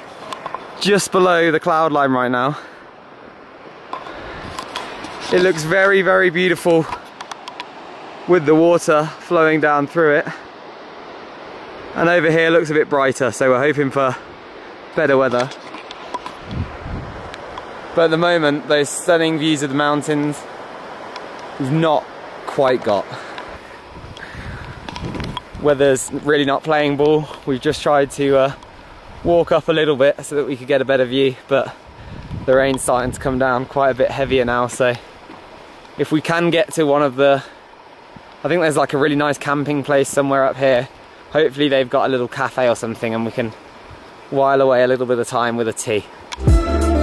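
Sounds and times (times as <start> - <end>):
wind on microphone: 3.9 - 5.7, 15.7 - 17.6, 23.6 - 26.3, 31.8 - 34.6.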